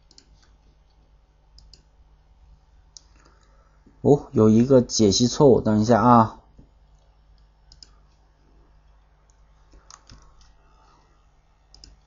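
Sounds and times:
keyboard typing clicks: 0.0s - 1.0s, 1.6s - 1.9s, 6.9s - 8.2s, 9.3s - 10.6s, 11.7s - 12.0s
room hum: 0.0s - 12.0s.

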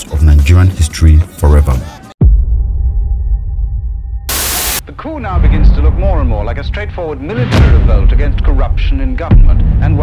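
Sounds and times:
burst of hissing static: 4.3s - 4.8s.

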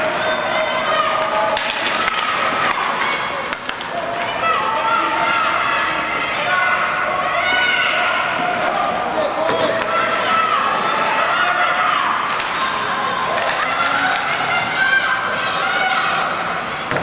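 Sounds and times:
people shouting: 0.0s - 17.0s.

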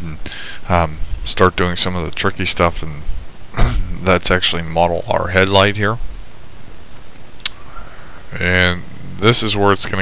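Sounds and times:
microphone hiss: 0.0s - 10.0s.

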